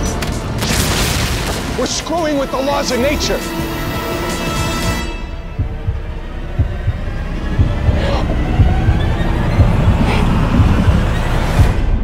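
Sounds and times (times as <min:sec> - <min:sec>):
low drone: 0:03.1 - 0:12.0
deep heartbeat-like thuds: 0:04.6 - 0:12.0.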